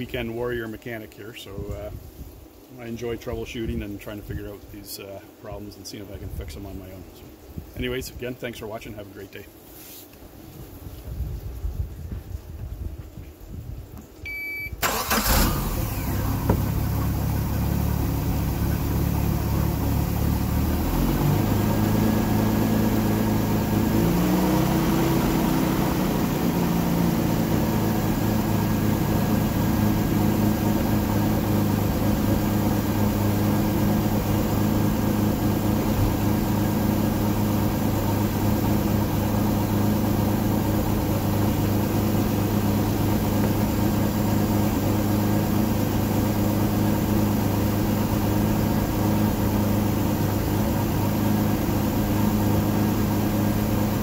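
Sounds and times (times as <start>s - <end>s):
short alarm beep: 14.3s - 14.8s
boat engine starting and idling: 14.3s - 54.0s.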